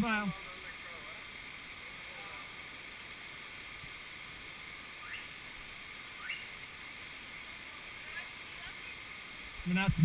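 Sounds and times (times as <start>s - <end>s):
mountain stream rushing: 0.0s - 10.0s.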